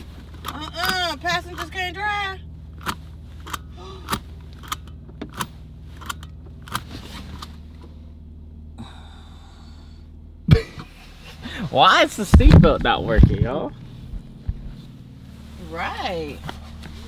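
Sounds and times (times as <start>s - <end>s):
car engine hum: 0.0s - 17.0s
seatbelt buckle clicks: 0.2s - 1.8s, 2.8s - 7.9s.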